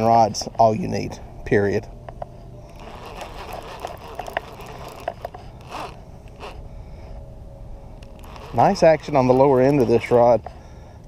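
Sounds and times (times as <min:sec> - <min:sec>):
fishing reel clicking: 0:02.7 - 0:06.6, 0:08.0 - 0:10.5.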